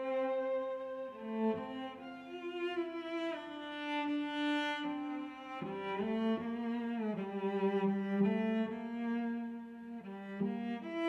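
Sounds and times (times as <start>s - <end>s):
slow string music: 0.0s - 11.0s.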